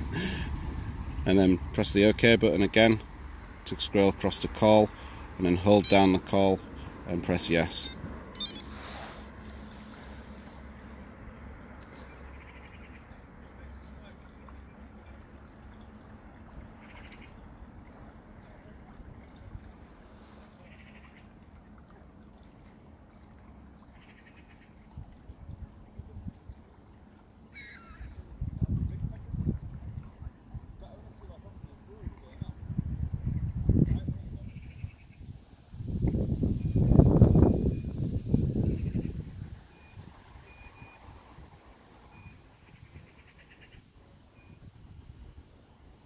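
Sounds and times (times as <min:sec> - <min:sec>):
faint bird calls: 0:11.9 - 0:13.3, 0:16.7 - 0:17.4, 0:20.3 - 0:21.4, 0:23.5 - 0:24.8, 0:27.5 - 0:28.2, 0:42.1 - 0:44.6
wind gusts on microphone: 0:28.3 - 0:30.9, 0:31.5 - 0:43.1.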